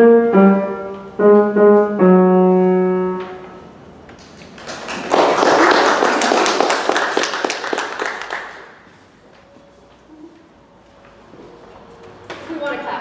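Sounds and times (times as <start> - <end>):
audience applauding: 4.2 - 8.8.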